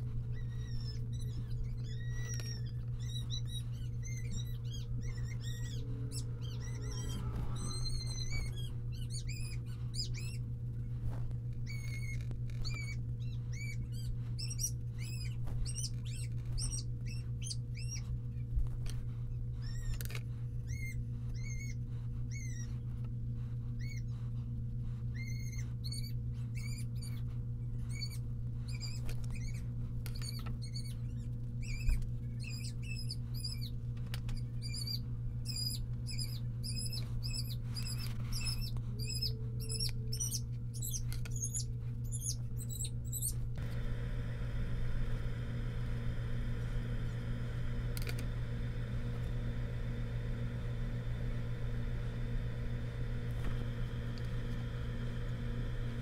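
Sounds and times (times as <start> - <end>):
steady low hum: 0.0 - 56.0
small bird chirping: 0.2 - 10.5, 11.6 - 18.5, 19.3 - 22.8, 23.8 - 24.1, 25.1 - 43.4.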